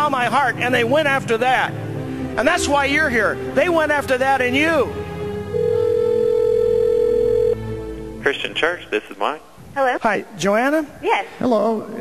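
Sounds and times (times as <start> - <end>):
telephone ringback tone: 5.6 - 7.6.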